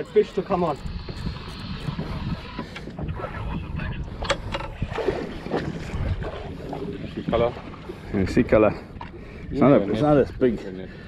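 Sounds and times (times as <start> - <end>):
fishing reel whirring and clicking: 0.0 - 2.9
water noise: 0.0 - 11.0
wind on microphone: 0.5 - 8.6.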